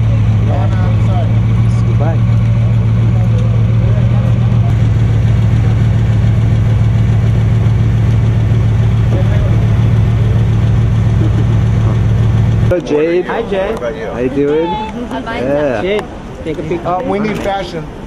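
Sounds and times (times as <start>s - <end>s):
car engine idling: 0.0s - 14.7s.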